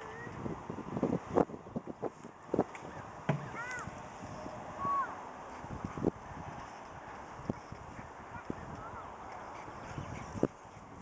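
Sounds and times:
sharp thumps: 3.3s - 3.6s.

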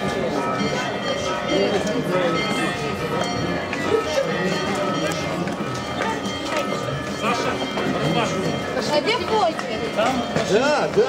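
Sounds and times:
crowd chatter: 0.0s - 11.0s
footsteps on cobblestones: 0.0s - 11.0s.

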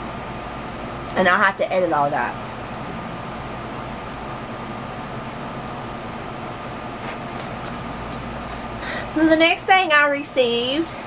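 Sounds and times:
appliance humming with whine: 0.0s - 11.0s.

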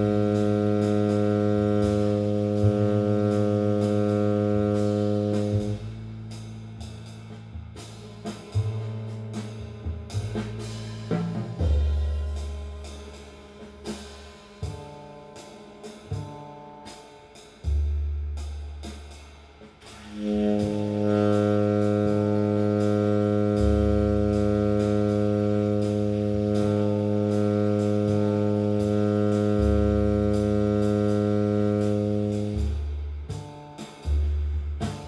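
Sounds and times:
saxophone long tone: 0.0s - 5.9s, 20.1s - 32.8s
bass line: 0.0s - 15.2s, 17.6s - 19.3s, 19.9s - 35.0s.

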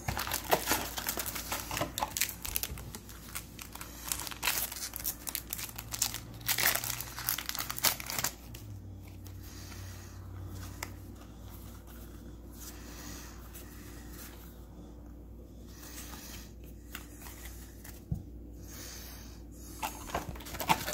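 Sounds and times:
foil wrapper crinkling and tearing: 0.0s - 8.6s, 19.8s - 20.9s.

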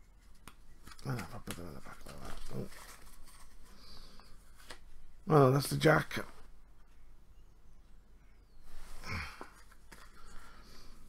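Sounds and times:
playing cards clicking and rustling: 0.1s - 4.9s, 9.4s - 10.8s.

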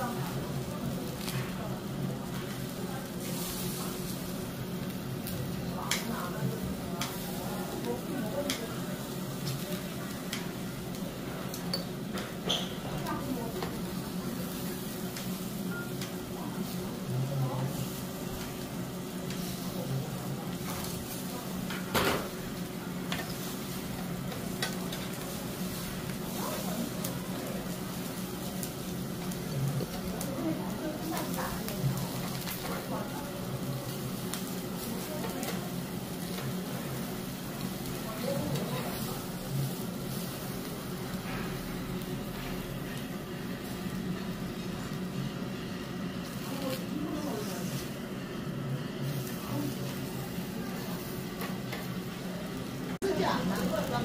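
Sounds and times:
meat sizzling on a grill: 0.0s - 54.0s.

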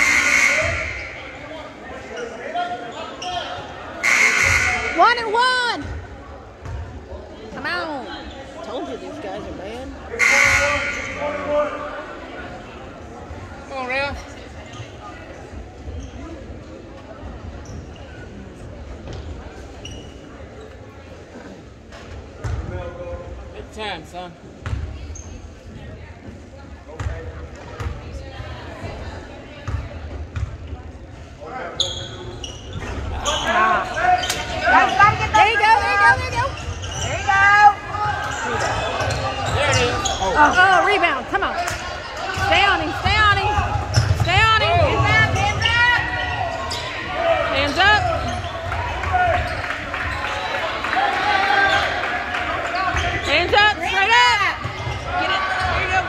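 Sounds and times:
sneaker squeaks: 0.0s - 5.2s, 14.6s - 15.2s, 15.8s - 16.5s, 17.3s - 18.4s, 19.1s - 20.9s, 24.6s - 25.7s, 31.7s - 41.2s, 41.8s - 50.6s.

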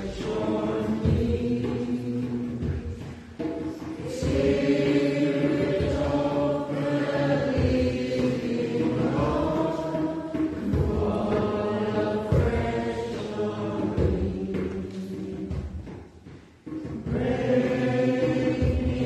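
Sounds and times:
voices singing a slow hymn: 0.0s - 19.0s.

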